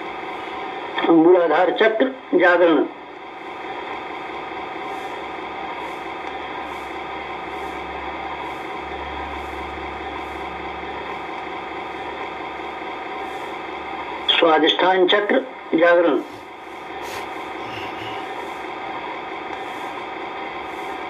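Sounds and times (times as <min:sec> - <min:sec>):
droning hum: 0:00.0 - 0:21.0.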